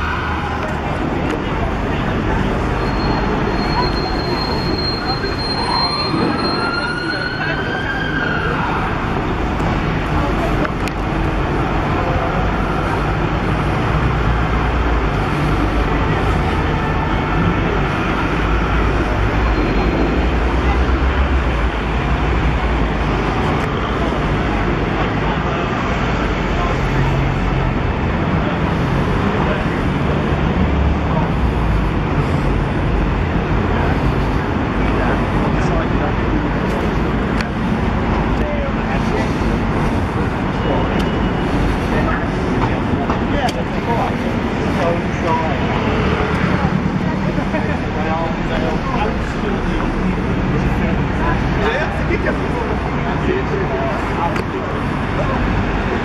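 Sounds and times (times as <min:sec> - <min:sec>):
road traffic rumble: 0:00.0 - 0:56.0
voices of passers-by: 0:00.0 - 0:56.0.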